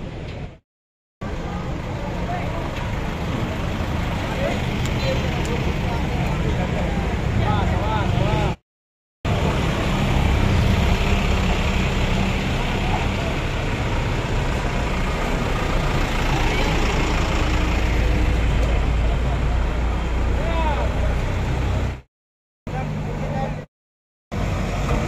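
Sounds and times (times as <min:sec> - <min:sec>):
road noise: 0:00.0 - 0:00.6, 0:01.2 - 0:08.6, 0:09.2 - 0:22.1, 0:22.7 - 0:23.7, 0:24.3 - 0:25.0
truck engines driving past: 0:01.2 - 0:08.6, 0:09.3 - 0:22.0, 0:24.4 - 0:25.0.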